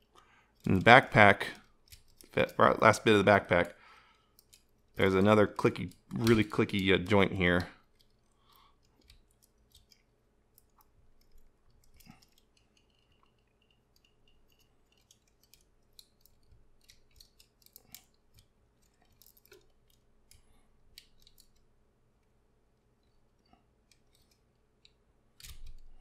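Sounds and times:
plastic toy figure clicks and knocks: 0:05.2 - 0:07.7.

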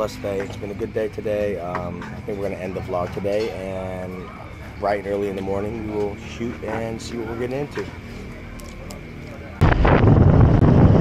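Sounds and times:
wind buffeting microphone: 0:09.6 - 0:11.0.

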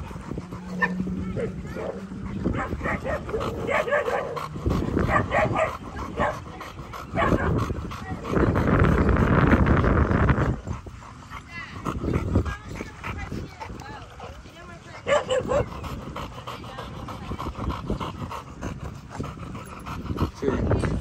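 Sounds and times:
dogs yipping and whining: 0:00.0 - 0:08.5, 0:15.1 - 0:17.5
dogs barking: 0:00.0 - 0:09.5, 0:14.9 - 0:20.6.

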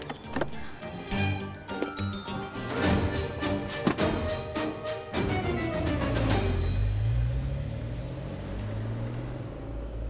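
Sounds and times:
car engine rumble: 0:05.6 - 0:10.0.

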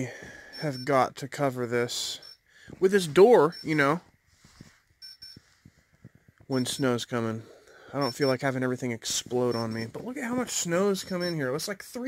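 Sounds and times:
high-pitched electronic beeps: 0:03.2 - 0:04.0, 0:05.0 - 0:05.4, 0:06.5 - 0:07.0, 0:07.9 - 0:08.5, 0:09.4 - 0:11.7
faint clicks and knocks: 0:04.0 - 0:06.6.

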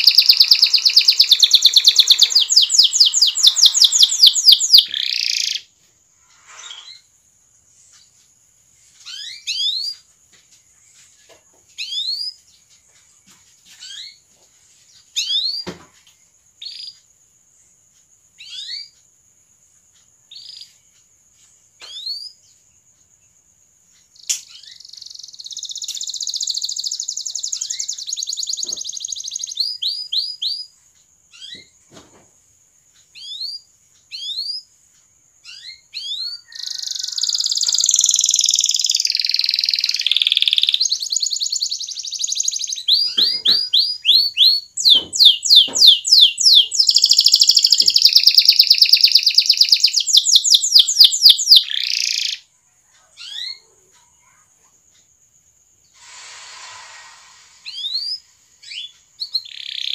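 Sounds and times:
canary singing trills: 0:00.0 - 0:05.7, 0:09.0 - 0:10.1, 0:11.8 - 0:12.5, 0:16.6 - 0:17.1, 0:18.4 - 0:19.0, 0:20.2 - 0:21.0, 0:24.0 - 0:31.8, 0:33.0 - 0:34.7, 0:35.4 - 0:54.4, 0:57.6 - 0:59.9.

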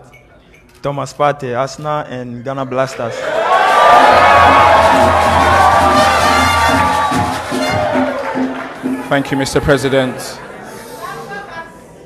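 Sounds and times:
crowd cheering and whooping: 0:03.2 - 0:09.9.

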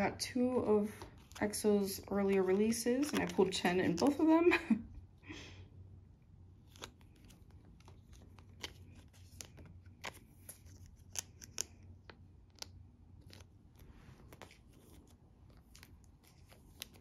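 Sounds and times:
plastic sleeves clicking and crinkling: 0:01.0 - 0:04.3, 0:06.6 - 0:17.0.

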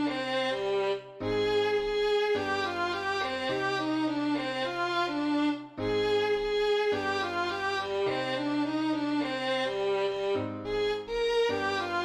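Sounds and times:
violin melody in short notes: 0:00.0 - 0:12.0.

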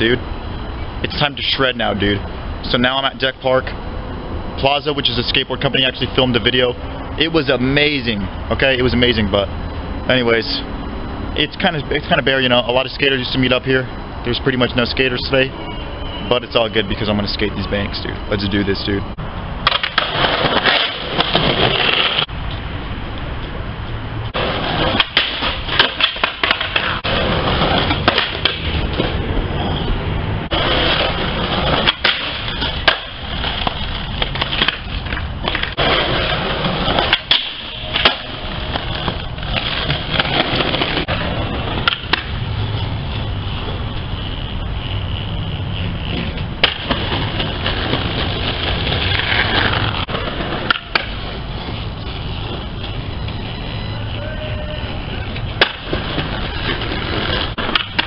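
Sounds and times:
skateboard wheels rolling on concrete: 0:00.0 - 0:58.0
skateboard tail clacks: 0:24.4 - 0:29.2, 0:30.6 - 0:42.9, 0:43.6 - 0:58.0.

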